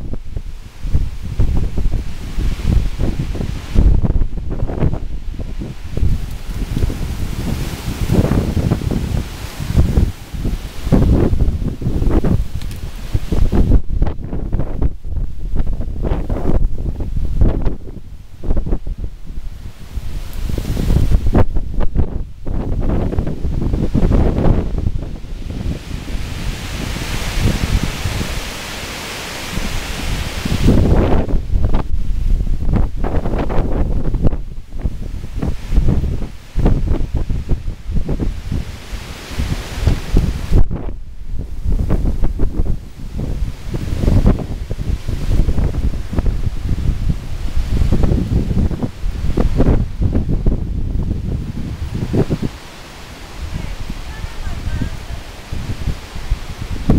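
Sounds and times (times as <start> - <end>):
wind buffeting microphone: 0.0 - 56.9
wind rushing through trees: 0.0 - 56.9.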